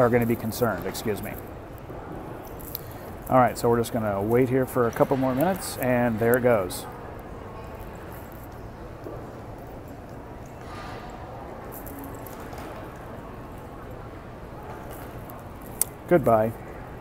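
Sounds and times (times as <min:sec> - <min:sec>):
airport terminal hum and hiss: 0:00.0 - 0:17.0.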